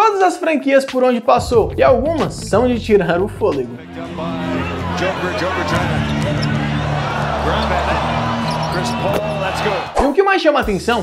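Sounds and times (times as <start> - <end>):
commentator talking: 0.0 - 6.6
background music with low notes: 0.7 - 10.0, 10.6 - 11.0
arena crowd noise: 3.8 - 10.2.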